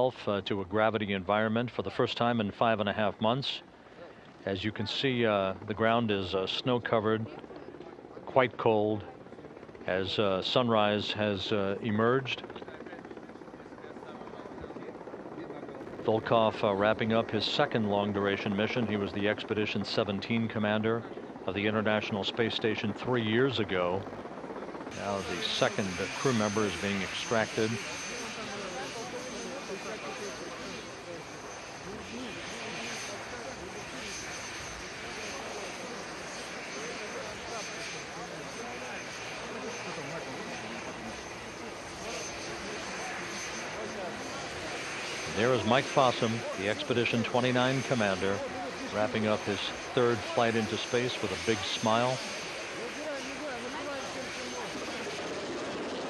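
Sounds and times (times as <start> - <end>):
helicopter engines and rotor: 0.0 - 56.0
high steady whine: 15.8 - 56.0
faint voices: 24.9 - 56.0.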